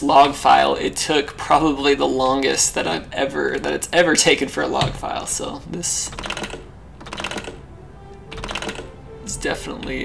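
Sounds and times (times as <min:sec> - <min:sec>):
computer keyboard clicks: 0:08.3 - 0:08.9.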